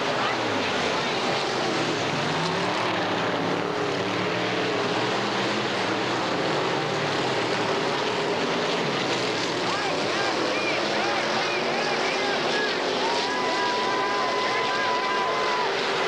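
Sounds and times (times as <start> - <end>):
race car engines roaring: 0.0 - 16.0.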